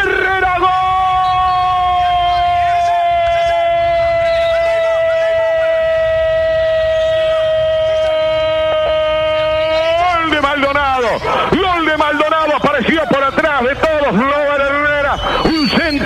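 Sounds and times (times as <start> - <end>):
commentator shouting excitedly: 0.0 - 16.0.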